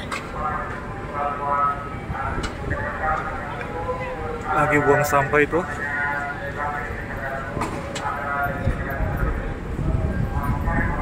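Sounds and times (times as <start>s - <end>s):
low harbour rumble: 0.0s - 11.0s
people talking: 0.0s - 11.0s.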